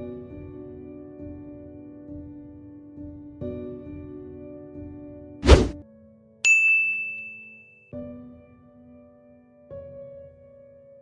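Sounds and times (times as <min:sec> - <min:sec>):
bright bell ding: 0:06.5 - 0:07.8.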